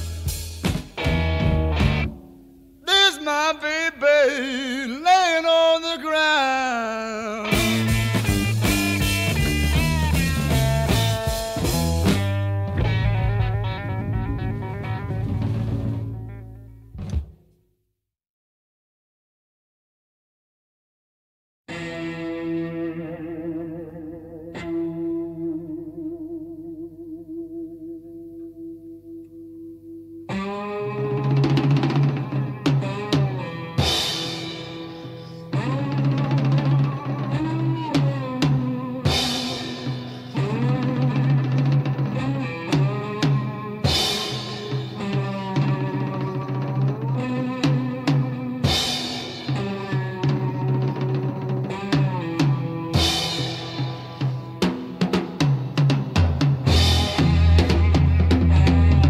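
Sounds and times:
bass guitar: 0:00.0 - 0:02.8, 0:07.4 - 0:17.4, 0:21.7 - 0:59.0
drum kit: 0:00.0 - 0:02.9, 0:07.4 - 0:17.4, 0:30.9 - 0:59.0
blues-rock band playing: 0:00.0 - 0:03.1, 0:07.4 - 0:17.2, 0:21.7 - 0:29.2, 0:30.2 - 0:59.0
guitar chords: 0:00.0 - 0:06.0, 0:07.2 - 0:17.4, 0:21.7 - 0:59.0.

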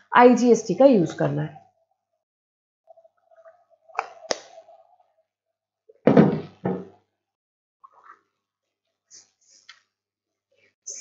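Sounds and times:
bottle knocking on desk: 0:06.1 - 0:07.0.

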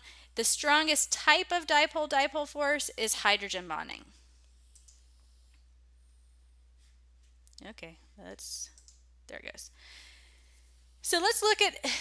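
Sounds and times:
low steady hum: 0:00.0 - 0:12.0
computer mouse click: 0:04.7 - 0:05.6, 0:08.7 - 0:09.0.

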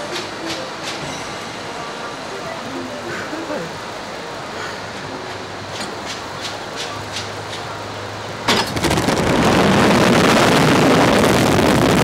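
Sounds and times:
wind rushing over microphone: 0:08.6 - 0:12.0.

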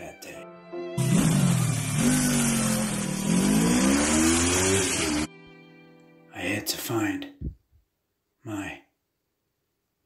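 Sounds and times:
motorcycle engine revving: 0:01.0 - 0:05.3.

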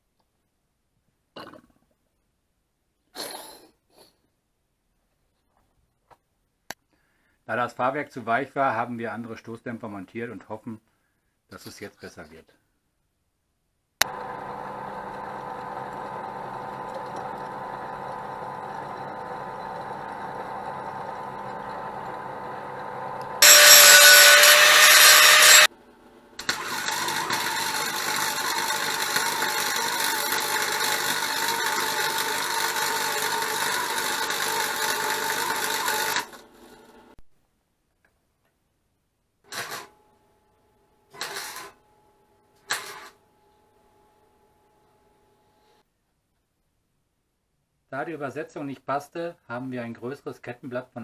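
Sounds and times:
machine hum: 0:14.0 - 0:37.1.

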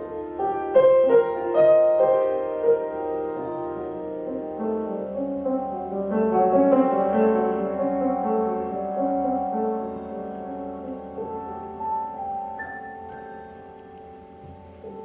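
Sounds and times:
slow piano melody over speakers: 0:00.0 - 0:15.0.

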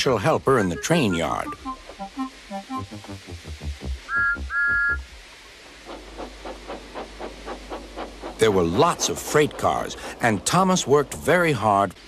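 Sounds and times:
steam engine puffs: 0:01.4 - 0:12.0
steam whistle toots: 0:04.1 - 0:05.1.

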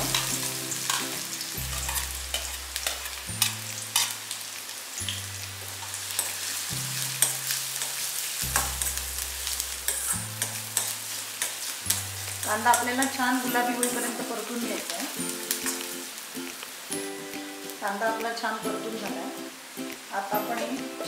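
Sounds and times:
onion and garlic sizzling in oil: 0:00.0 - 0:21.0
soft background music: 0:00.0 - 0:21.0
spatula scraping metal pan: 0:07.0 - 0:12.9.

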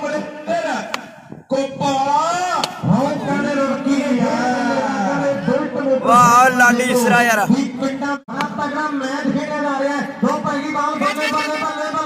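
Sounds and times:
man's voice with rising pitch: 0:03.0 - 0:09.9.

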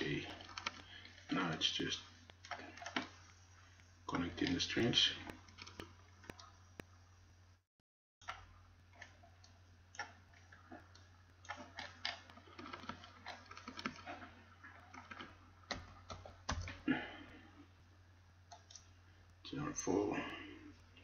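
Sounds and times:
low steady hum: 0:00.0 - 0:07.6, 0:08.2 - 0:21.0
mouse and keyboard clicks: 0:05.2 - 0:06.9, 0:08.2 - 0:16.8, 0:18.5 - 0:18.9.

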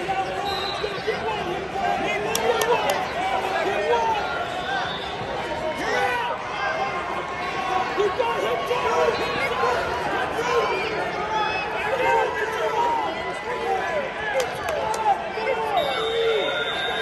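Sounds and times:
crowd murmur: 0:00.0 - 0:17.0.

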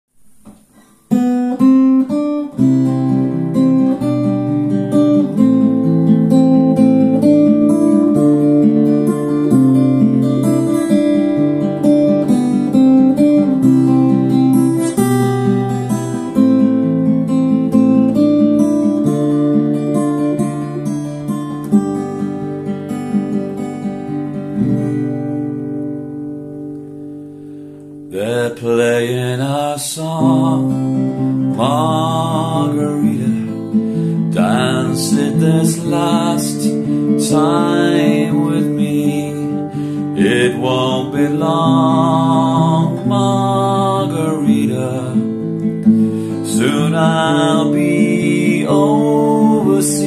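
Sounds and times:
acoustic guitar picked chords: 0:00.1 - 0:50.0.

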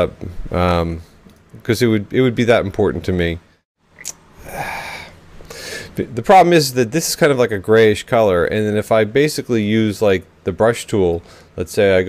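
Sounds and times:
man breathing: 0:04.4 - 0:06.0, 0:11.2 - 0:11.6.

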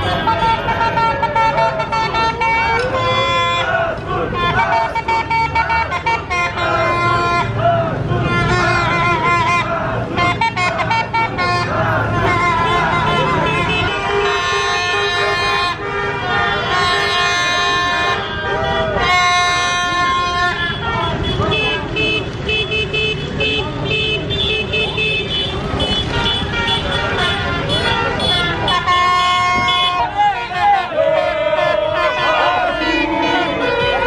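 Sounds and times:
crowd shouting: 0:00.0 - 0:22.0, 0:25.3 - 0:34.0
horns blaring: 0:00.0 - 0:34.0
traffic noise: 0:00.0 - 0:34.0.

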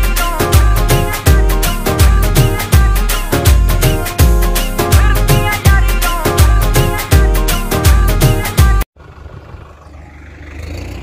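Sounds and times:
distant tractor engine humming: 0:09.0 - 0:11.0.

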